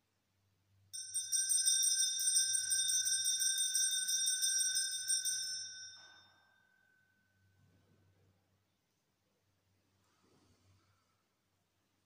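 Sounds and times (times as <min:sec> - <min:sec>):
altar bells ringing: 0:01.0 - 0:07.1.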